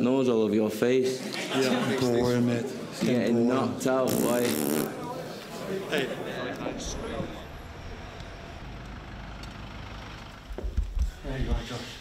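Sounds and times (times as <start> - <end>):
city street traffic rumble: 6.2 - 11.9.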